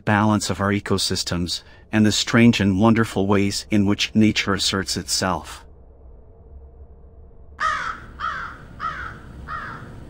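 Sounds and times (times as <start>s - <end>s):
low steady rumble: 0.0s - 10.0s
bird cawing: 7.6s - 10.0s.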